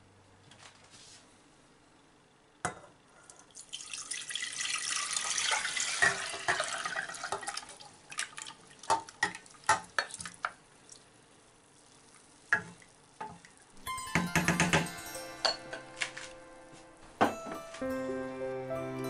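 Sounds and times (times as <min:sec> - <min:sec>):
liquid pouring into saucepan: 0:03.4 - 0:10.3.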